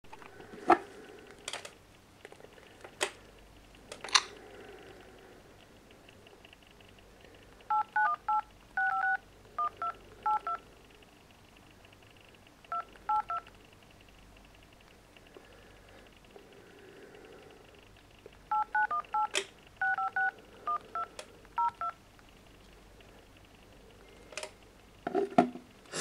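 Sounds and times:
phone keypad tones: 7.7 - 10.6, 12.7 - 13.5, 18.5 - 22.0.

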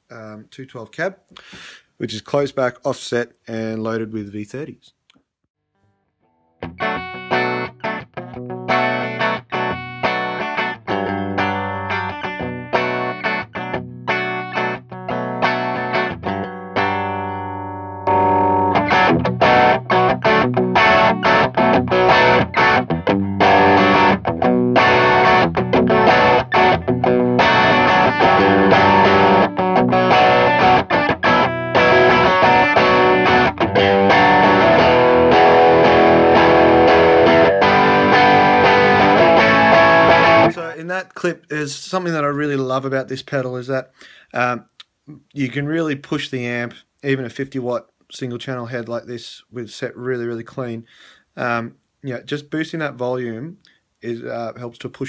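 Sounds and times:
overdriven electric guitar chords: 6.2 - 40.7.

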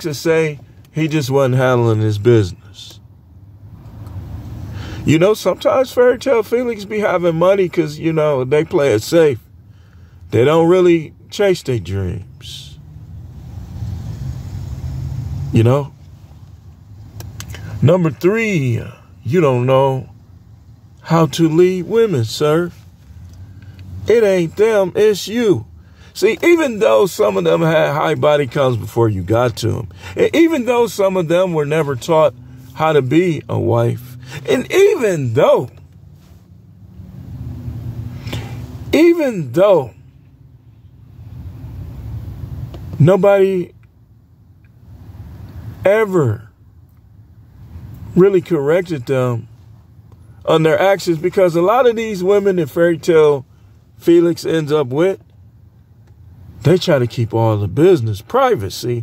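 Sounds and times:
car engine rumble from inside: 0.0 - 59.0.

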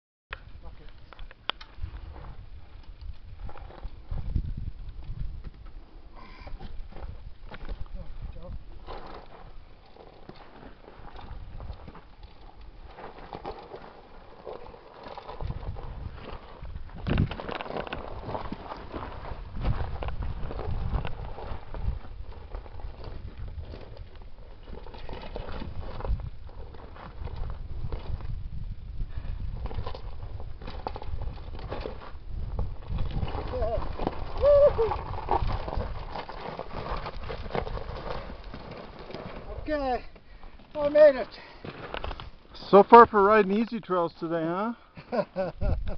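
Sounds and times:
boots and tyres scuffing on rock: 8.8 - 28.3, 31.0 - 43.6.

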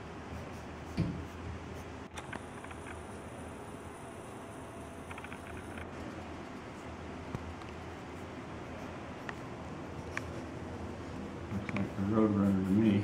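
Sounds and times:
low room hum: 0.0 - 13.0
pencil scratching on paper: 0.3 - 1.9, 11.7 - 13.0.

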